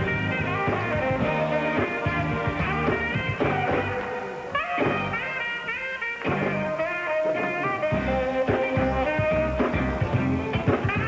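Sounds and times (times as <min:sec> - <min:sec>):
band with bass drums and keyboards: 0:00.0 - 0:11.0
saxophone solo: 0:00.0 - 0:11.0.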